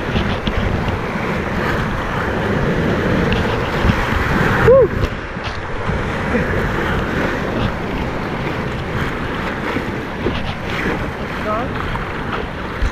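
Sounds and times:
rushing whitewater: 0.0 - 12.9
wind buffeting microphone: 0.0 - 12.9.

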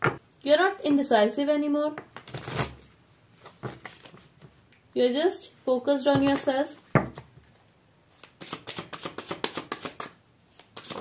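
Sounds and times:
cards being shuffled: 2.1 - 2.8, 3.4 - 4.4, 8.2 - 11.0.

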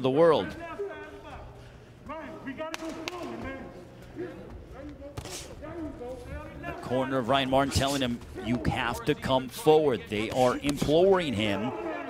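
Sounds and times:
men shouting instructions: 0.0 - 12.0.

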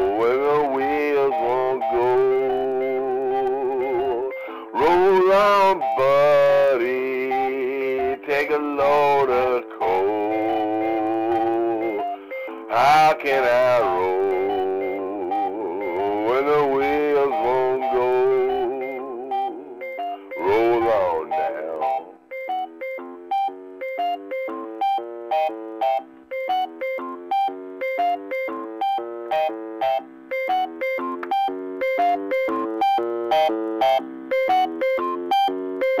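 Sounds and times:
electronic organ playing chords: 0.0 - 36.0.

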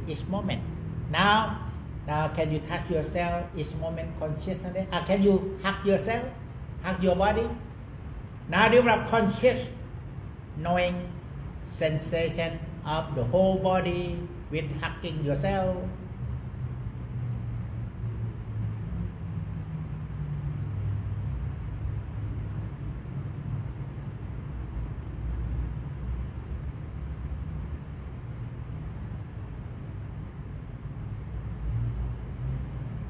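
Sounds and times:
low background rumble: 0.0 - 33.0.

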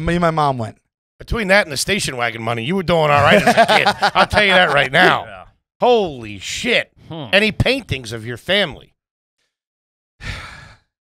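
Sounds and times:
man breathing into microphone: 10.2 - 11.0.

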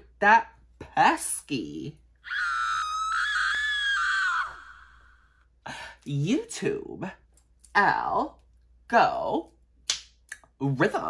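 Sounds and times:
person screaming: 2.3 - 5.2.

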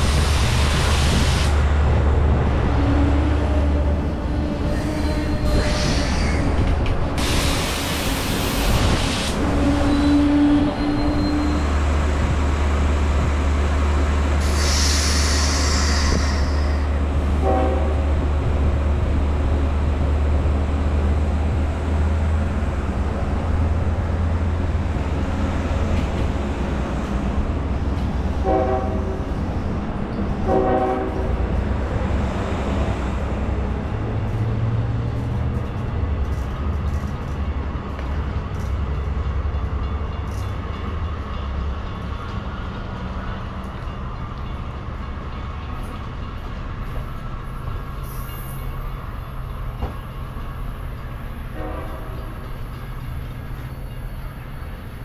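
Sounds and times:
train low rumble: 0.0 - 55.0
locomotive horn blasts: 17.4 - 18.1, 28.4 - 29.2, 30.4 - 31.4, 51.5 - 52.4.

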